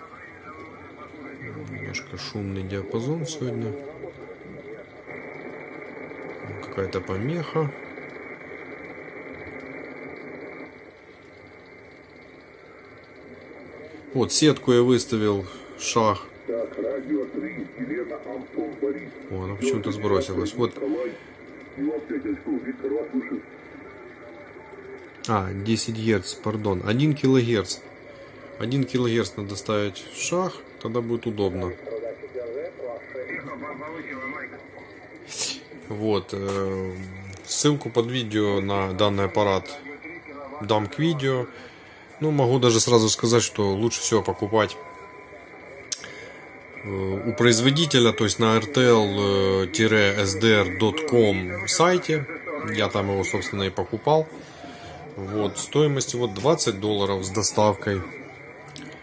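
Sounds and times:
faint voice over radio: 0.0s - 10.7s, 13.7s - 59.0s
shortwave radio static hiss: 0.0s - 59.0s.

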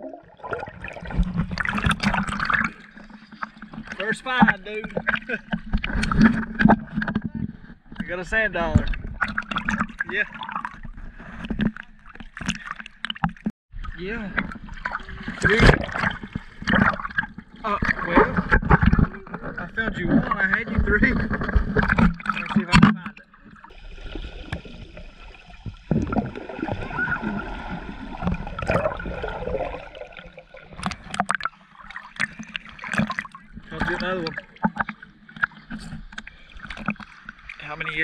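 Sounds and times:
sea water sloshing and splashing: 0.0s - 38.0s
muffled underwater sound: 17.5s - 31.2s.

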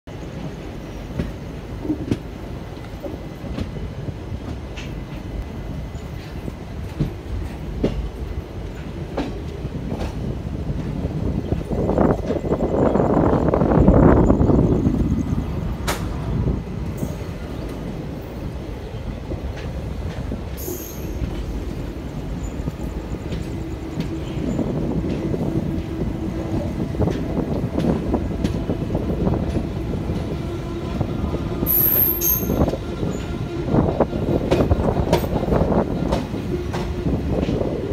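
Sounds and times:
train low rumble: 0.1s - 37.9s.

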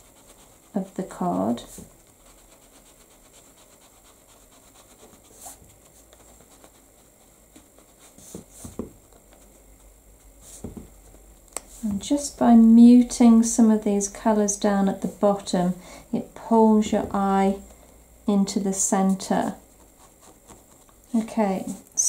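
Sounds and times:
foam tool rubbing on card: 0.0s - 9.6s
soft taps and scuffs: 5.2s - 12.1s.

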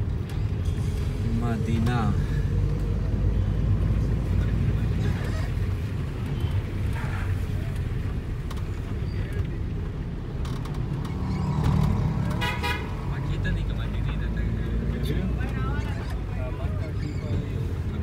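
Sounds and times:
rickshaw and motorbike engines: 0.0s - 18.0s
street traffic rumble: 0.0s - 18.0s.

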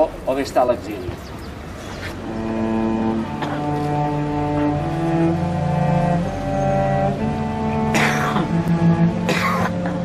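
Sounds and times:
cellos playing long bowed notes: 1.7s - 10.0s.

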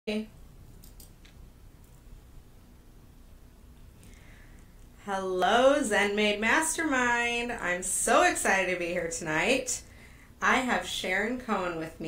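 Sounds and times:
faint room noise: 0.1s - 12.0s
soft clicks: 0.7s - 2.0s.

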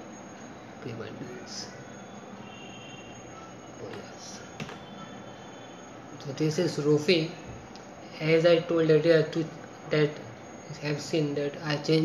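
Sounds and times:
microphone hiss: 0.0s - 12.0s
keyboard keystrokes: 3.9s - 4.9s.

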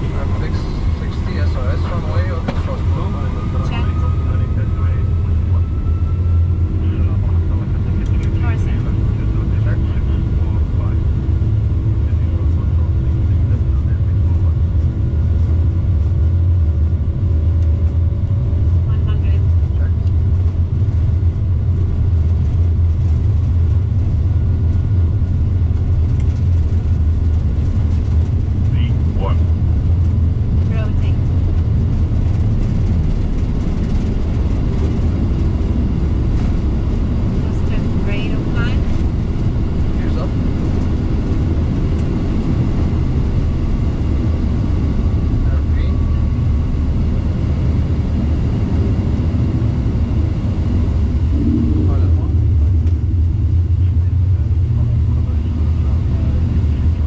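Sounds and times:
jet engines roaring at takeoff: 0.0s - 57.0s
wheels rumbling on runway: 0.0s - 57.0s.

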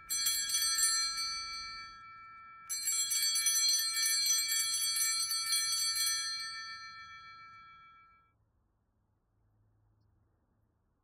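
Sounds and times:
altar bells jangling: 0.0s - 8.2s.

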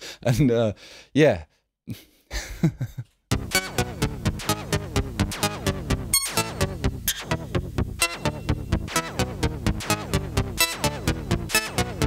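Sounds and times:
short synth notes: 3.3s - 12.0s.

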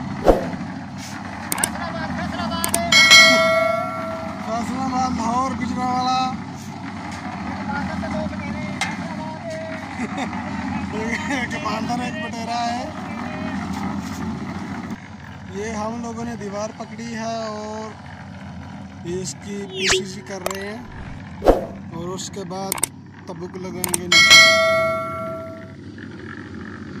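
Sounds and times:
bright notification chime: 24.3s - 25.7s.

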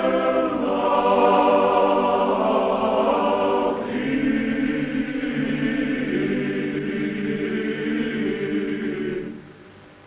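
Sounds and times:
choir singing chant-like chords: 0.0s - 9.5s.

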